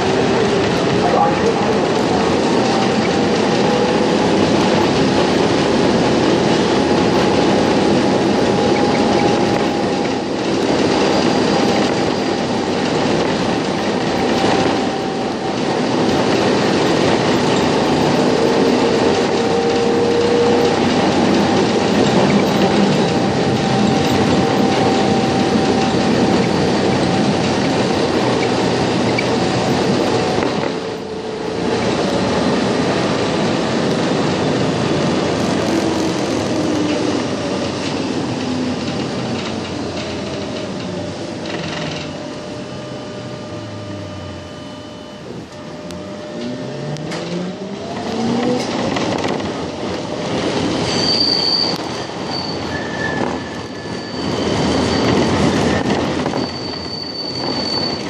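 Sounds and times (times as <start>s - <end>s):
tram wheel squeal: 0.0s - 58.0s
tram wheels rumbling on rail: 0.0s - 58.0s.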